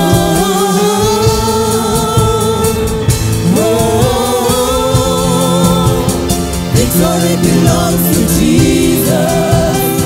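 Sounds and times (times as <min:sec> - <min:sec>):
instrumental backing: 0:00.0 - 0:10.0
women singing gospel song: 0:00.0 - 0:10.0.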